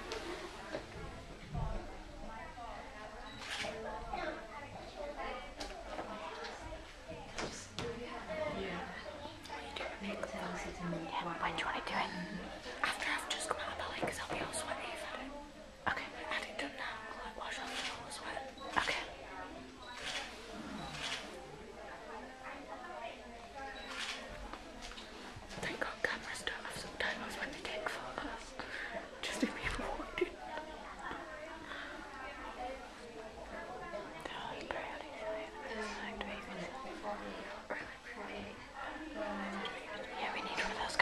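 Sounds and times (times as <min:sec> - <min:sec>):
people whispering: 0:00.0 - 0:41.0.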